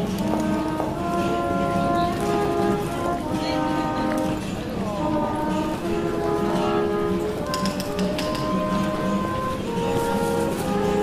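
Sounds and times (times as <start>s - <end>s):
trumpet playing slow melody: 0.0s - 11.0s.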